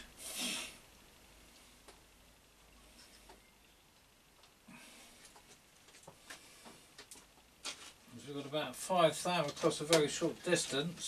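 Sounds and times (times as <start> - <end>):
man speaking: 8.1 - 11.0.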